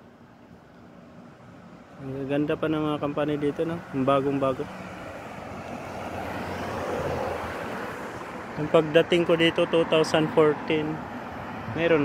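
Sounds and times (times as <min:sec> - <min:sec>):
vehicle driving past: 0:03.7 - 0:12.0.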